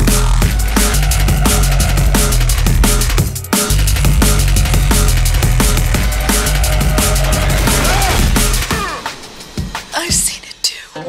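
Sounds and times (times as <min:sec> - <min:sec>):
sparse vocal: 0:00.0 - 0:09.0
sliding synth notes: 0:00.0 - 0:09.7.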